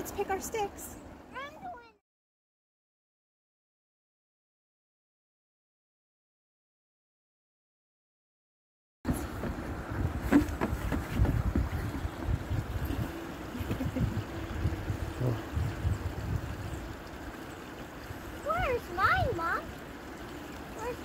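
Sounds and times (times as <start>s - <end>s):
stream flowing: 9.1s - 21.0s.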